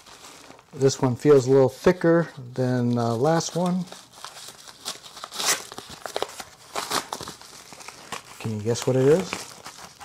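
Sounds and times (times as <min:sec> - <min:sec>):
packaging crinkling and tearing: 0:00.0 - 0:01.0, 0:02.8 - 0:10.0.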